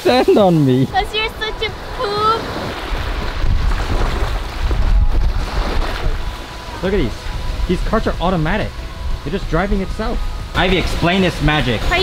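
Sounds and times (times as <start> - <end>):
small waves washing on sand: 0.0 - 8.0
wind buffeting microphone: 0.8 - 12.0.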